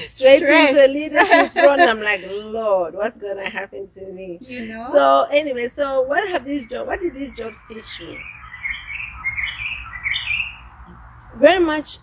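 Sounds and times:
birds chirping: 4.7 - 12.0.

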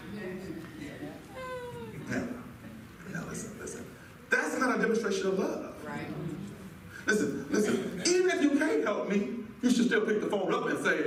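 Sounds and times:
person saying yeah: 1.3 - 2.1.

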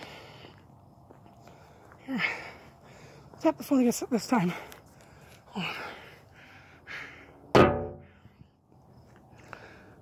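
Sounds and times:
hard knock on metal: 7.6 - 8.0
soft breath: 9.3 - 10.0.

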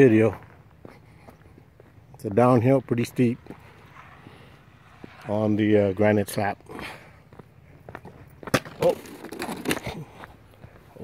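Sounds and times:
footsteps on stone: 7.3 - 11.0.

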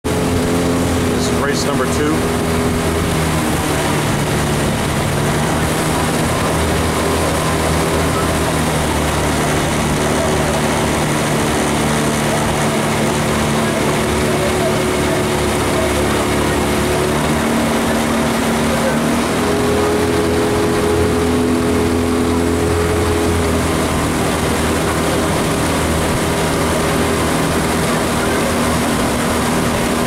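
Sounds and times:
outboard motor running: 0.0 - 30.0.

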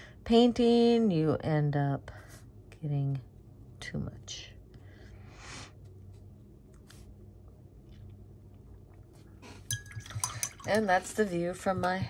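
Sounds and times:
paintbrush clinking against glass jar: 9.6 - 10.9.

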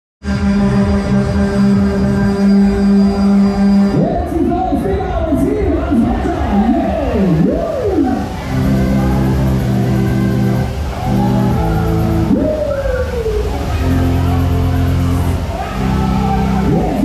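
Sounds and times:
fairground ride music: 0.2 - 17.0.

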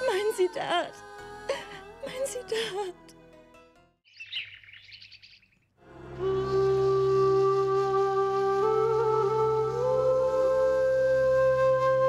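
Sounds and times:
birds chirping: 4.1 - 5.8
flute tune: 6.0 - 12.0.

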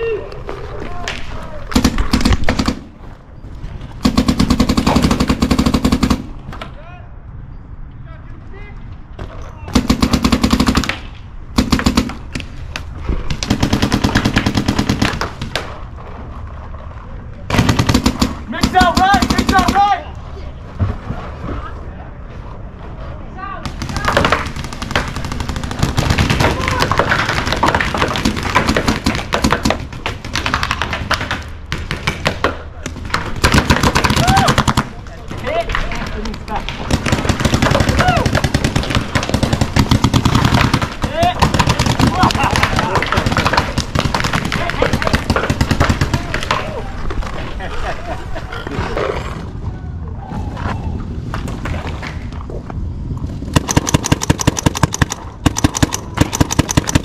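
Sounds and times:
people shouting: 26.4 - 27.0, 34.1 - 34.7, 37.6 - 38.5
paintball markers firing: 35.8 - 46.8, 53.5 - 57.0.

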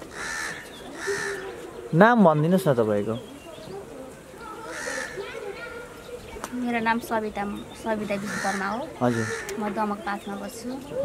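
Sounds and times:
bird harsh calls: 0.0 - 11.0.

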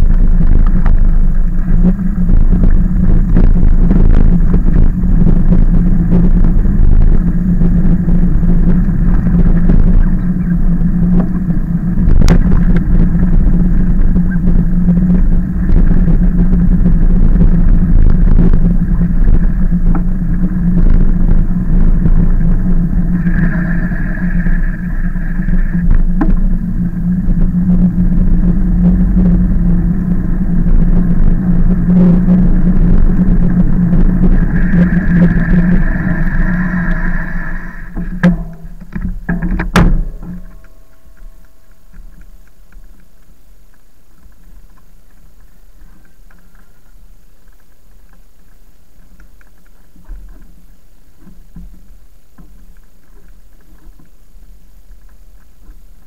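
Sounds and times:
e-bike motor drone: 0.0 - 56.0
road rumble: 0.0 - 56.0
wind on microphone: 0.0 - 56.0
high steady tone: 21.4 - 43.4
knocks from bumps: 37.9 - 41.4.

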